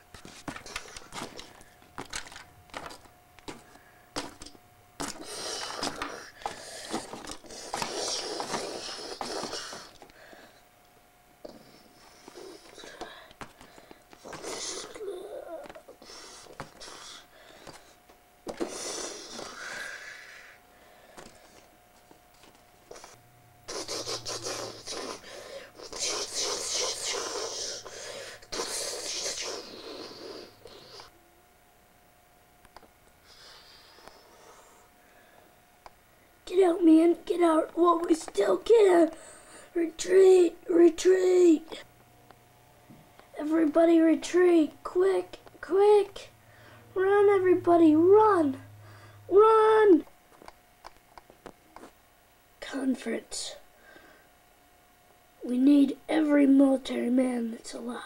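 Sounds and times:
child making monster roars: 0:14.3 - 0:15.9.

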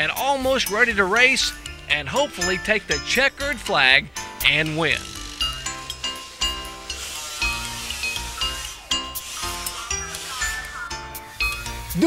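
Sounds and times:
background music with beat: 0:00.0 - 0:12.0.

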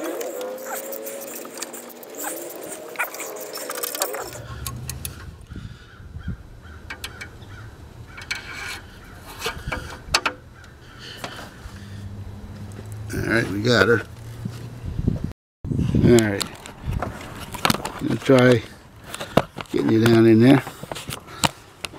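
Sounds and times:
squeaky gliding sounds: 0:00.0 - 0:05.5, 0:06.8 - 0:14.5.

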